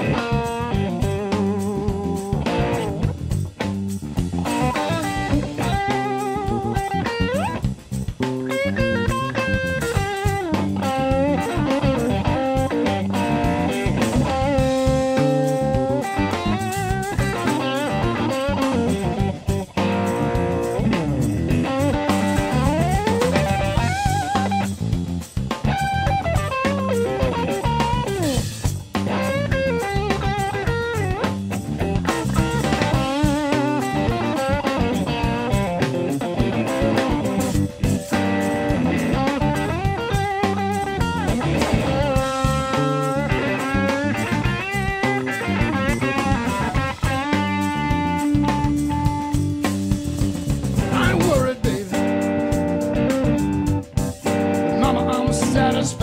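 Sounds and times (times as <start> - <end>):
drum kit: 0.0 - 56.0
electric bass: 0.0 - 56.0
electric guitar lead lines: 0.0 - 56.0.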